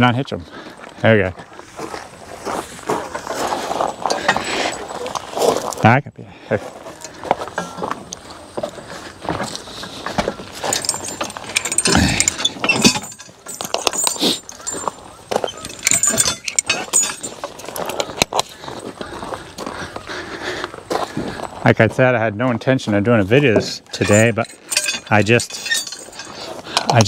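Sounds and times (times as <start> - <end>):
harness chains jangling: 3.3 - 5.5, 10.6 - 18.2, 23.8 - 27.0.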